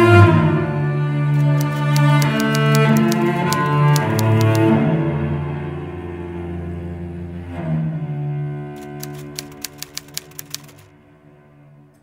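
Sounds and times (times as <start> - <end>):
typewriter keystroke clicks: 1.4 - 4.7, 8.8 - 10.9.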